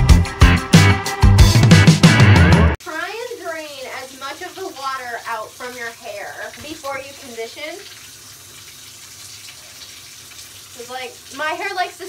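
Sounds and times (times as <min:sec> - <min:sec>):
tap water running into tub: 0:02.8 - 0:12.0.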